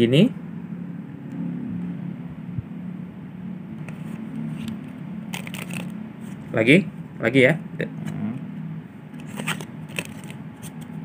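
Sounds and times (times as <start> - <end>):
steady low hum: 0.0 - 11.0
playing cards handled: 3.8 - 6.4, 9.2 - 10.9.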